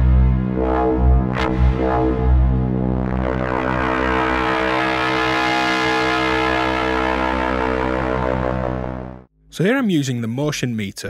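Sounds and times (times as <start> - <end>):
buzzy synthesizer drone: 0.0 - 9.3.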